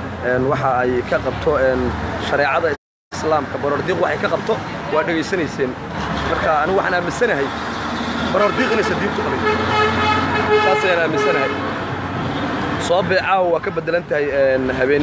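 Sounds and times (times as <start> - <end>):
man talking: 0.2 - 7.5, 8.3 - 9.6, 10.5 - 11.6, 12.8 - 15.0.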